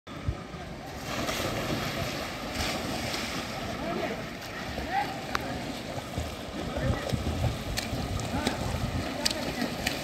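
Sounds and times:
water splashing in a pool: 0.1 - 10.0
wind buffeting microphone: 6.1 - 10.0.

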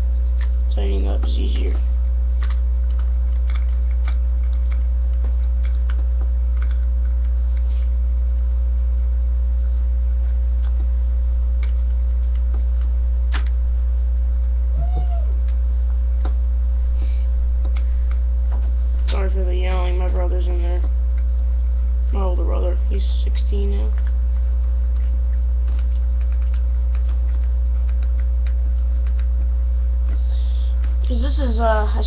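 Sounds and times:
low electrical hum: 0.0 - 32.0
distant voice calling out: 14.8 - 15.4.

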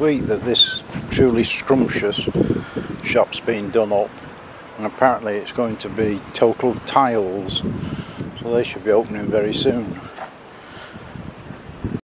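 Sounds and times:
outdoor background hiss: 0.0 - 12.0
wind noise on microphone: 0.0 - 12.0.

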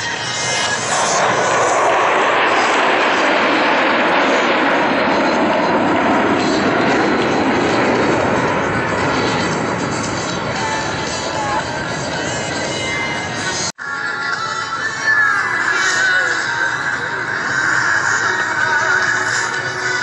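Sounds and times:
jet engines rushing overhead: 0.0 - 20.0.

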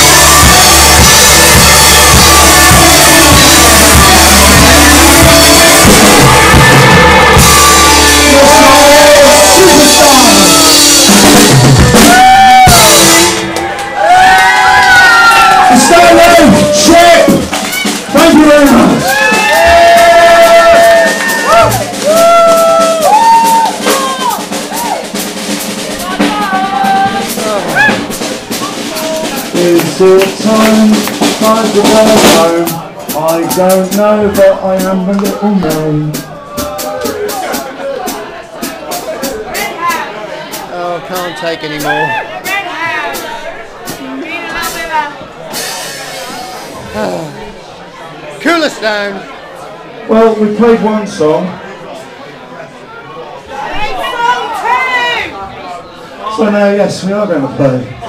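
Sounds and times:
voices shouting and singing: 0.0 - 47.4
drum kit with cymbal hits: 0.0 - 47.6
live rock band playing: 0.0 - 47.6.

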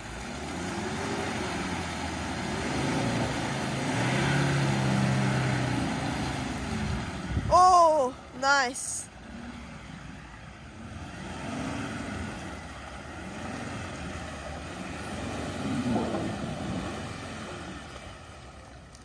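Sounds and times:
engine revving in mud: 0.0 - 8.3, 9.1 - 19.0.

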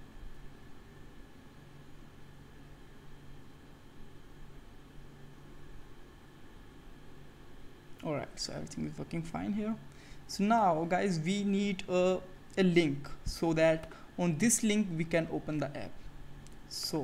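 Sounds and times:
faint steady hum: 0.0 - 17.0
low steady hiss: 0.0 - 17.0.

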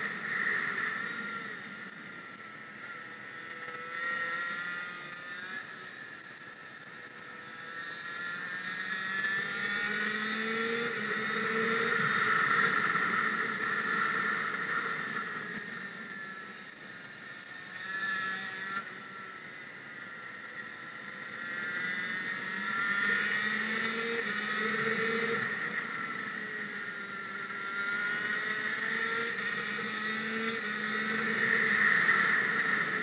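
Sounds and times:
racing motorcycle engine: 0.0 - 33.0.

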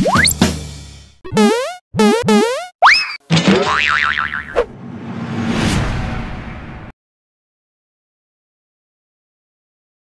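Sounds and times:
cartoon springy boings: 1.2 - 4.7
wobbling warbling tone: 1.3 - 4.7.

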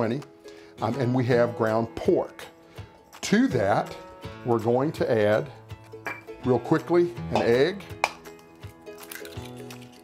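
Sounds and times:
acoustic guitar music: 0.0 - 10.0
egg cracking on metal bowl: 7.3 - 10.0.

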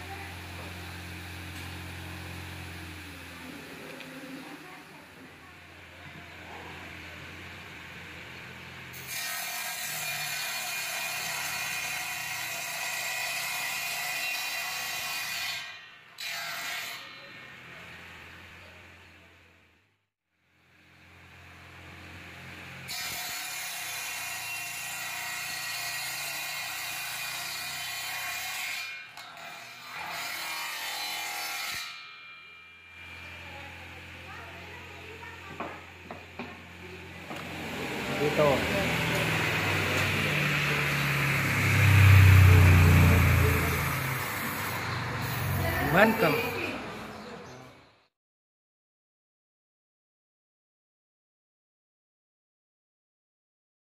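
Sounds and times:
saw ripping through wood: 0.0 - 4.4, 8.9 - 17.3, 22.6 - 32.2, 36.2 - 46.5
table saw motor humming: 0.0 - 15.2, 29.4 - 47.2.

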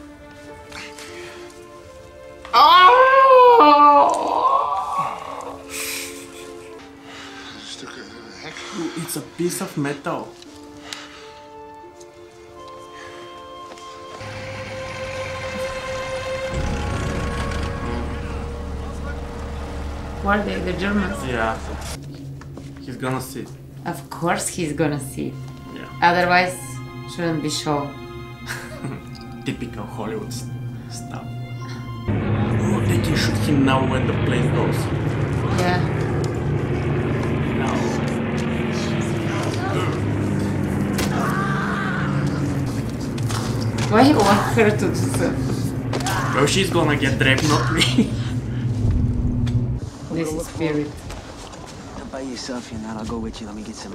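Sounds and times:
sustained music notes: 0.0 - 50.9
armoured vehicle engines rumbling: 14.2 - 53.9.

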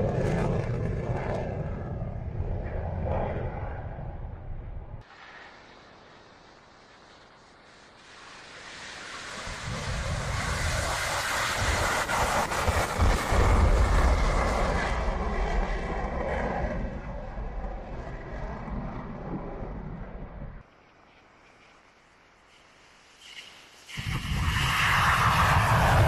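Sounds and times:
jet engine roar: 0.0 - 20.6, 23.2 - 26.0.

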